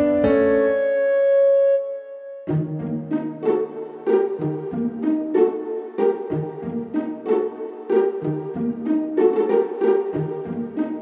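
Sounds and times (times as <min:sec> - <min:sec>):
background music with short notes: 0:00.0 - 0:11.0.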